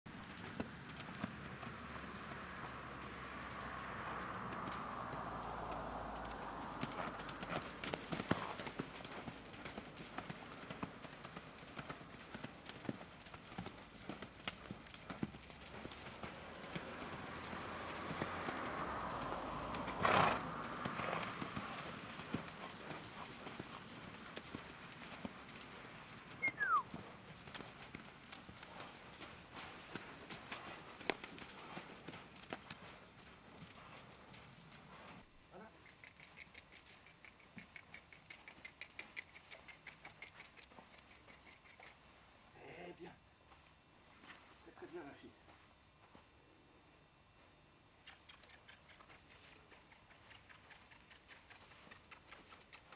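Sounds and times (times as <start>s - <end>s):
horse hoofbeats on sand: 0.1s - 42.2s.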